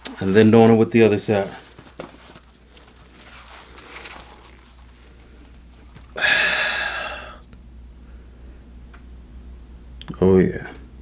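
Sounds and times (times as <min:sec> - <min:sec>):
person breathing softly: 0:05.0 - 0:07.4
sharp breath out: 0:06.2 - 0:07.4.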